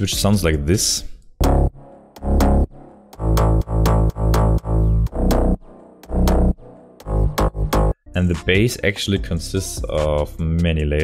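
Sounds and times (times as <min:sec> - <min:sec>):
punchy synth bassline: 0:01.4 - 0:08.0.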